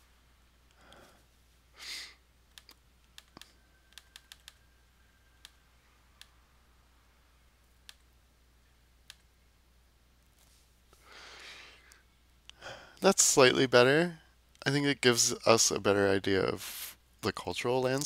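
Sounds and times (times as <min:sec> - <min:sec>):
soft breath: 0:00.7 - 0:02.2, 0:10.4 - 0:13.0
computer mouse clicks: 0:02.5 - 0:04.6, 0:05.4 - 0:05.6, 0:06.2 - 0:06.4, 0:07.7 - 0:08.1, 0:09.0 - 0:09.3.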